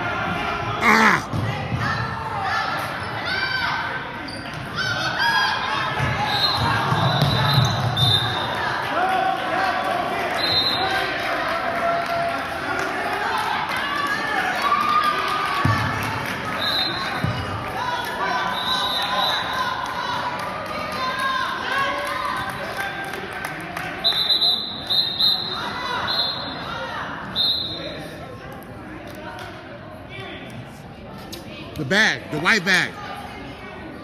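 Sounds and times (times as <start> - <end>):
voices echoing in gym: 0.0 - 34.0.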